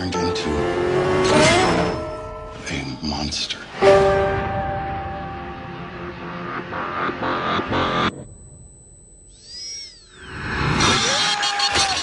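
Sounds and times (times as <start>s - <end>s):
held tone: 4.0s - 11.1s
heavy rumble and drone: 4.4s - 11.1s
faint high whine: 4.5s - 11.6s.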